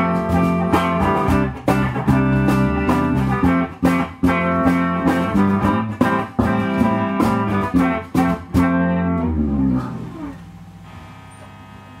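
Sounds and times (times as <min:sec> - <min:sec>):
electric and bass guitar chord: 0:00.0 - 0:12.0
low amplifier hum: 0:00.0 - 0:12.0.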